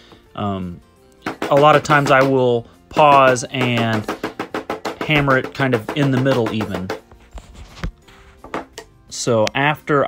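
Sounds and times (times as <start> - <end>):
hammer knocking clay: 1.2 - 7.0, 8.4 - 8.9.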